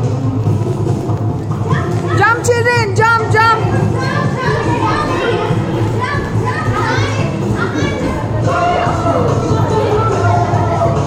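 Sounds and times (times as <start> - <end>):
children chattering: 0.0 - 11.0
song playing: 0.0 - 11.0.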